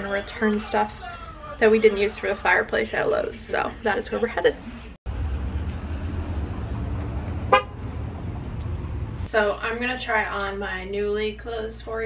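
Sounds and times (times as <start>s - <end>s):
steady low rumble: 5.1s - 9.3s
car horn toot: 7.5s - 7.8s.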